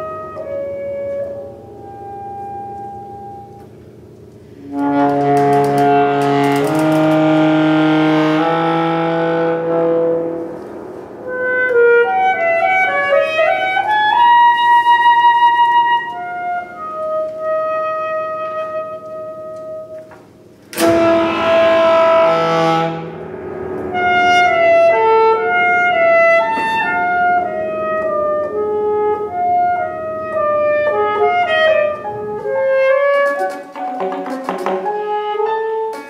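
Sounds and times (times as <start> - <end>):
alto saxophone: 0.0 - 36.0
loud chord: 0.0 - 36.0
piano: 0.0 - 36.0.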